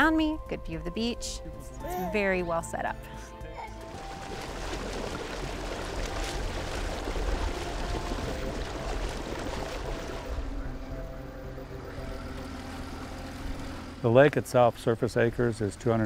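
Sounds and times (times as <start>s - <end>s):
outboard motor drone: 2.1s - 16.0s
water rushing and splashing: 3.8s - 14.2s.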